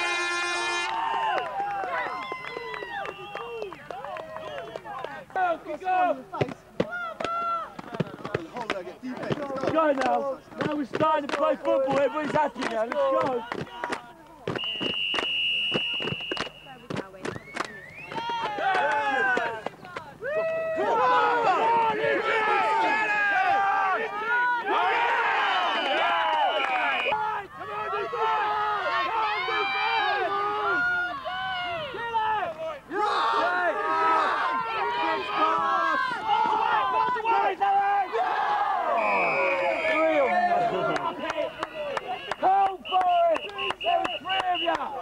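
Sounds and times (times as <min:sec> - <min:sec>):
referee's whistle: 0:14.5 - 0:18.2, 0:25.7 - 0:27.2, 0:38.9 - 0:45.0
many voices shouting: 0:20.2 - 0:42.8.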